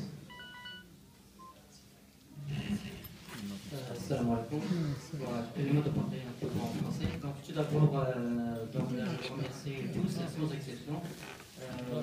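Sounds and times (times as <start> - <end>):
short electronic beep: 0.3 - 1.6.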